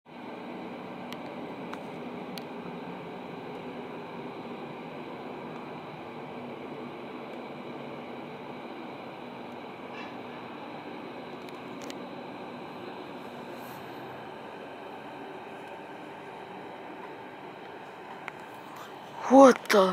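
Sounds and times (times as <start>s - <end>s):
steady background hum: 0.1s - 19.9s.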